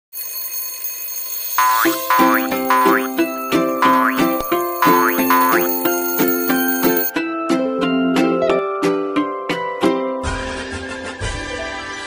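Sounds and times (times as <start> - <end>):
cartoon boing sound effect: 1.6 - 3.2, 3.8 - 5.6
high electronic tones: 1.6 - 7.1.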